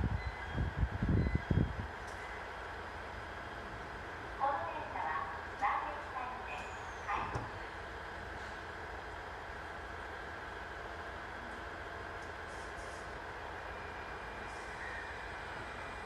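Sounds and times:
electric train humming: 0.0 - 16.0.

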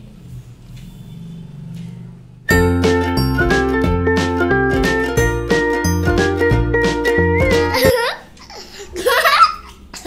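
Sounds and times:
young child laughing: 7.6 - 10.0.

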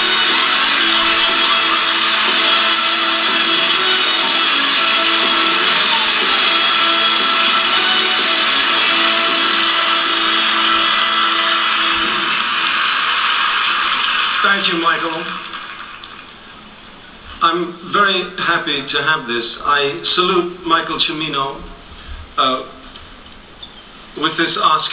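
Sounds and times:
band playing music: 0.0 - 12.7.

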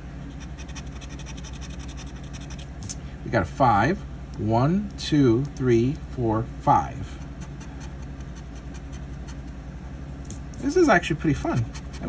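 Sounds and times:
scratching lottery ticket: 0.3 - 2.7, 7.1 - 9.6, 11.5 - 12.0.

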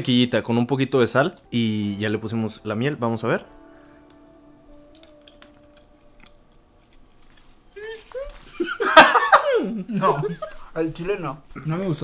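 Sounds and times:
chewing biscuit: 4.9 - 7.5.

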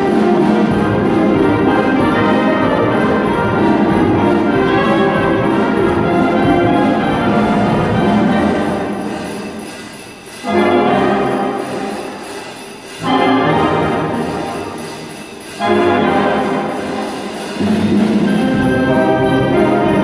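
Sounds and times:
wind band playing swing music: 0.0 - 20.0.

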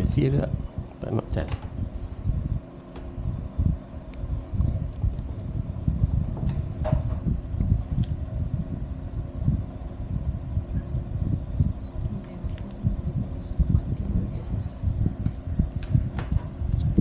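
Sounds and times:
low hum: 0.0 - 17.0
microphone handling rumble: 0.0 - 17.0.

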